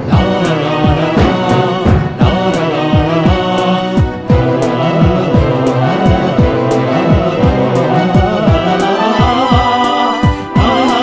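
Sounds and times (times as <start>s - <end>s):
held melody: 0.0s - 11.0s
deep drum hits: 0.1s - 3.6s.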